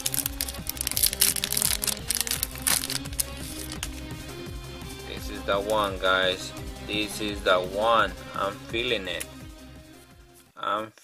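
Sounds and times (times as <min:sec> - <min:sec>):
foil wrapper crinkling and tearing: 0:00.0 - 0:03.9
cards sliding: 0:00.0 - 0:04.0
background music: 0:00.0 - 0:10.9.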